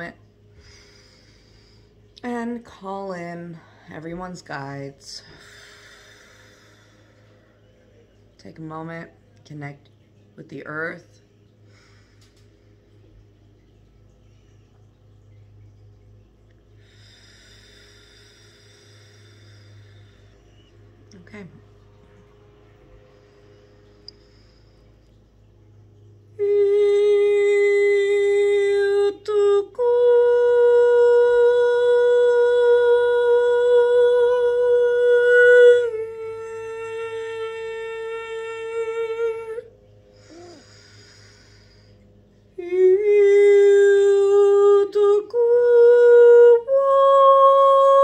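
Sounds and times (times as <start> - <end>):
woman chanting long wordless notes: 0.0 - 7.4, 21.0 - 22.0, 26.3 - 41.9, 42.5 - 48.0
faint low hum: 0.0 - 48.0
soft hiss: 0.0 - 48.0.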